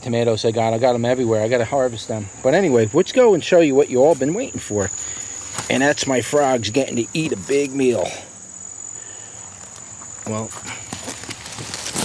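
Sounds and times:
faint background hiss: 0:00.0 - 0:12.0
insect trilling: 0:00.0 - 0:12.0.

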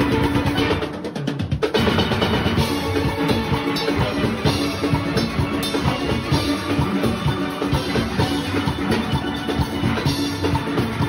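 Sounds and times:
steady drum beat: 0:00.0 - 0:11.0.

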